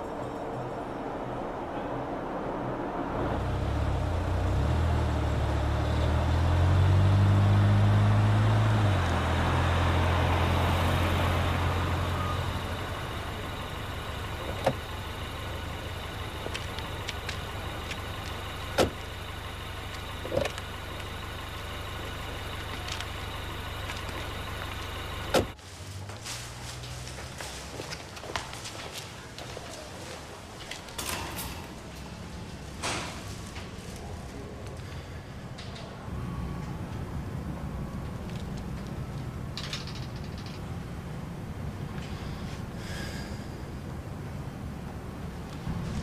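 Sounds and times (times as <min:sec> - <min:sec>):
car engine running: 0:03.1 - 0:26.2.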